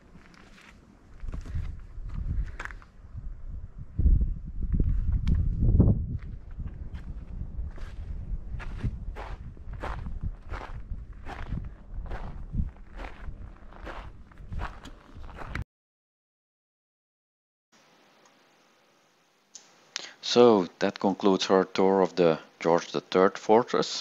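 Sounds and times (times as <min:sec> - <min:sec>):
footsteps crunching on gravel: 0:00.1 - 0:02.8, 0:07.0 - 0:15.6.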